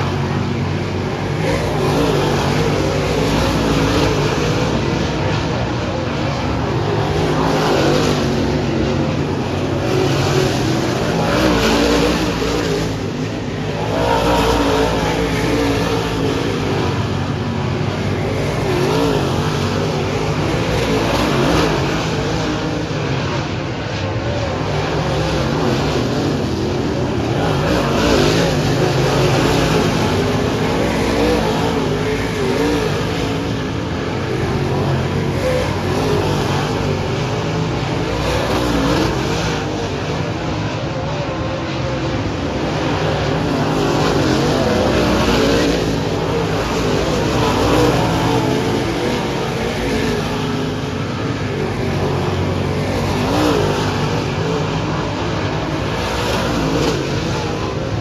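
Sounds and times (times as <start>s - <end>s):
race car engines: 0.0s - 58.0s.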